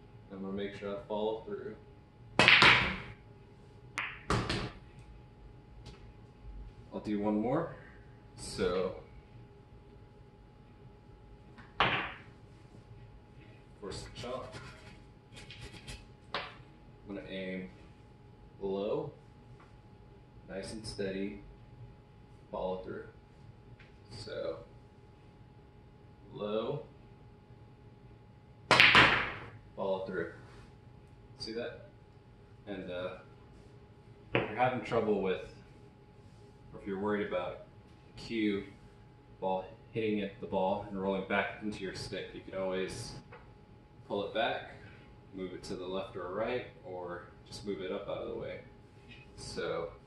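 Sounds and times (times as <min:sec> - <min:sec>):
pool balls knocking: 0:04.0 - 0:04.8, 0:11.6 - 0:12.3, 0:28.7 - 0:29.5, 0:34.4 - 0:34.7.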